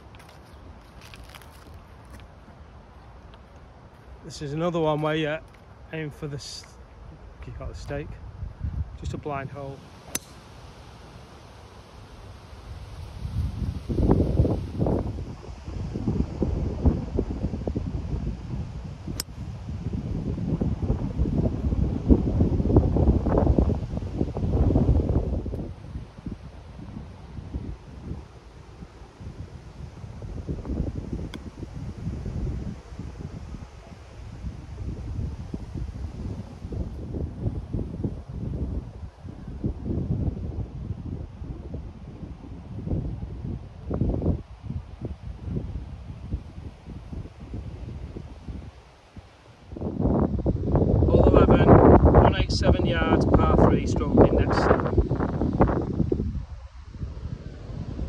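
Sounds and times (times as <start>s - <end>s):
wind buffeting microphone: 0.0s - 10.8s, 12.1s - 58.0s.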